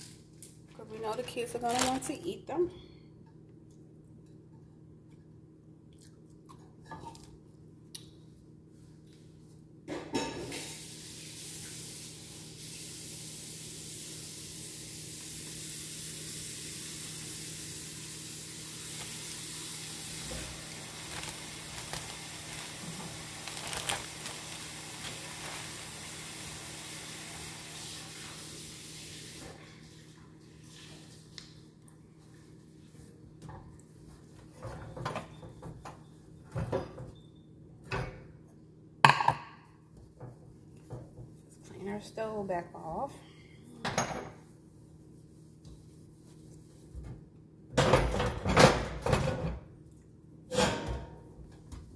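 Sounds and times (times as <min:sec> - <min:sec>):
steady hiss: 0:10.5 - 0:29.6.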